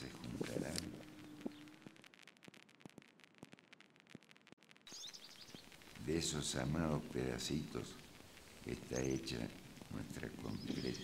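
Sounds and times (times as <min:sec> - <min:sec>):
high bird chirps: 0:04.9 - 0:05.7, 0:10.4 - 0:11.0.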